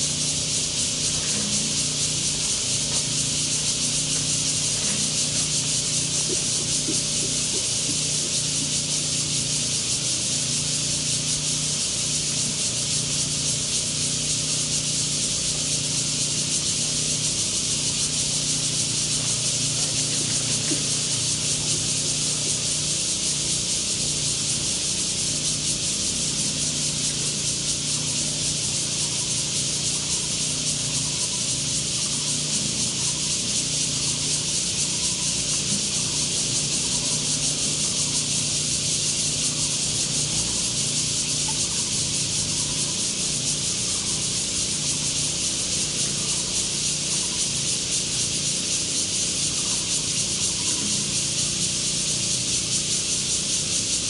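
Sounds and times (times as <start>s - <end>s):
cicadas buzzing: 0.0s - 54.0s.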